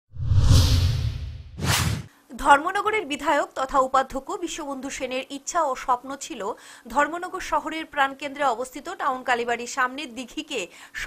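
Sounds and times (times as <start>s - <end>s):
whoosh transition effects: 0.1s - 2.1s.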